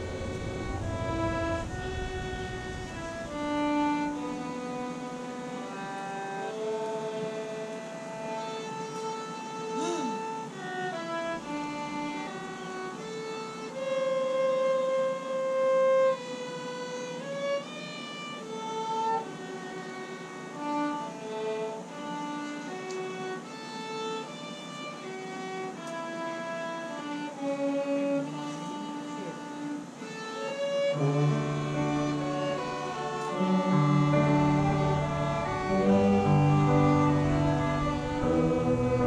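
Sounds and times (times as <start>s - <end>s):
orchestra playing: 0.0s - 39.0s.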